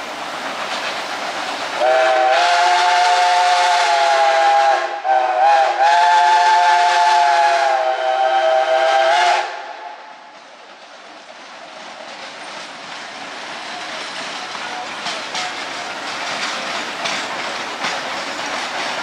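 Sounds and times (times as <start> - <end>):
train running sound: 0.0 - 19.0
steam locomotive whistle blasts: 1.8 - 10.1.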